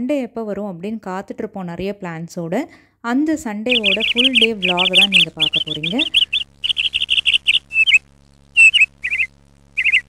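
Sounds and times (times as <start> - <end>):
birds chirping: 3.7 - 10.0.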